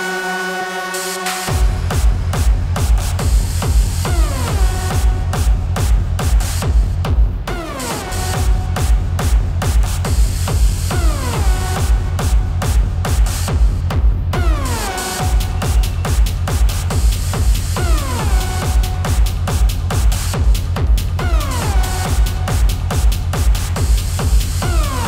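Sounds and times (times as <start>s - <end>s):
electronic dance music: 0.0s - 25.0s.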